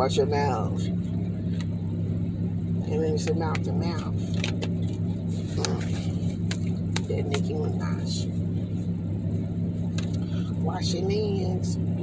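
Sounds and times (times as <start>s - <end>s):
car engine hum inside cabin: 0.0s - 12.0s.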